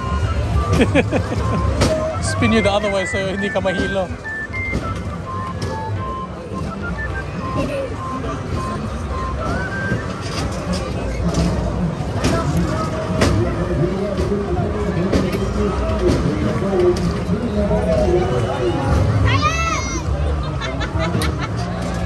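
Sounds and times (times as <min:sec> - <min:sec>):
crowd chatter: 0:00.0 - 0:22.0
simple electronic tune: 0:01.5 - 0:10.0.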